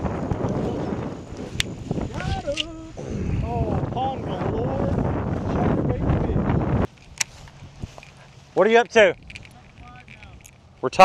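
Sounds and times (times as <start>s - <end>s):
wind buffeting microphone: 0.0s - 11.0s
light clicks: 1.6s - 2.8s.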